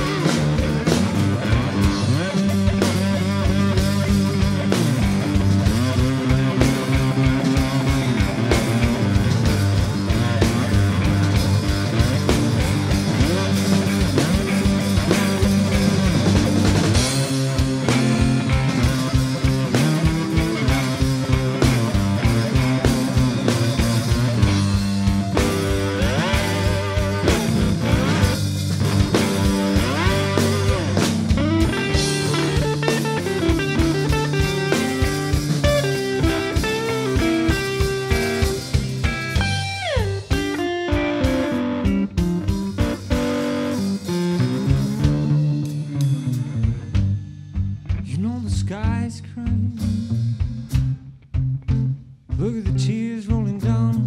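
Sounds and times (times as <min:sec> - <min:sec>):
guitar line sliding down: 0:00.0 - 0:47.3
drum kit: 0:00.0 - 0:54.0
electric guitars: 0:00.0 - 0:54.0.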